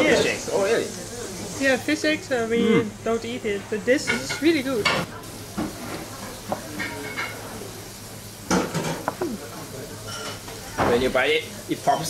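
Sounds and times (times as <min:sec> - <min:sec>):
dishes clinking: 0:04.0 - 0:07.5, 0:08.5 - 0:11.1
murmur of voice: 0:09.0 - 0:10.8.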